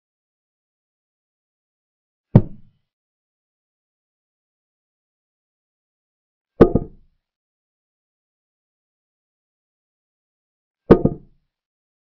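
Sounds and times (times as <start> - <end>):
wooden knocks of chess piece: 10.9 - 11.3.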